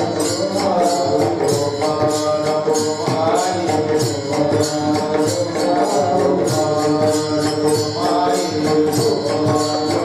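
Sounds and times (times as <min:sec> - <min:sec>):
brass hand cymbals clashing: 0:00.0 - 0:10.0
devotional chanting: 0:00.0 - 0:10.0.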